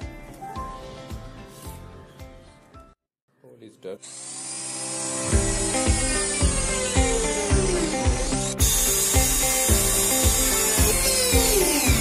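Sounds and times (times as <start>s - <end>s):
electric drill boring through wood: 4.0s - 12.0s
acoustic music with steady beat: 5.3s - 12.0s.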